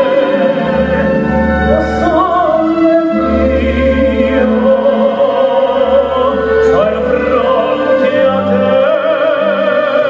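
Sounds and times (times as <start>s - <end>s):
operatic singing: 0.0s - 10.0s
orchestral accompaniment: 0.0s - 10.0s.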